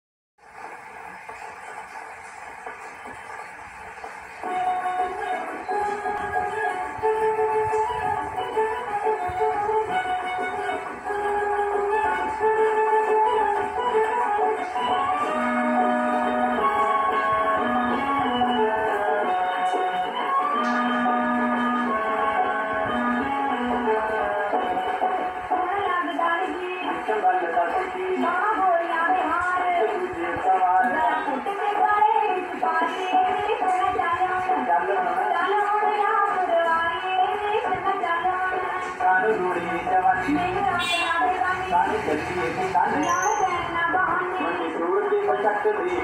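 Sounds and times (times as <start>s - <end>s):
record surface hiss and crackle: 0.4s - 46.0s
recorded music with held notes: 3.6s - 25.6s.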